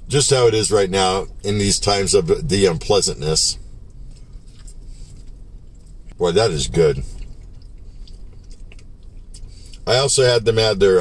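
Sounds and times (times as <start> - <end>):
low steady hum: 0.0 - 11.0
man chewing: 3.8 - 9.8.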